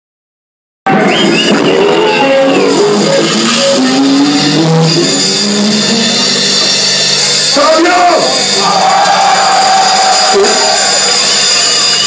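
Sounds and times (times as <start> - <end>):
drums: 0.9 - 12.0
electric guitar notes: 1.8 - 7.6.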